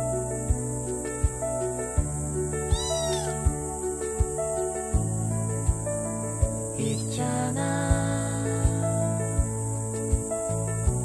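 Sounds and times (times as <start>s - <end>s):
background music with steady beat: 0.0s - 11.0s
kitten meowing: 2.7s - 3.5s.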